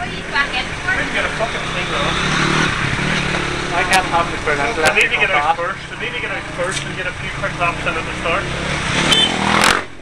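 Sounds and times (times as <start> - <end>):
indistinct voices: 0.0 - 9.0
engine running steadily: 0.0 - 10.0.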